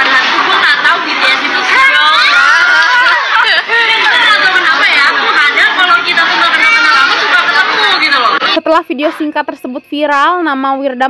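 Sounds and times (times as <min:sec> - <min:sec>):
women talking over one another: 0:00.0 - 0:11.0.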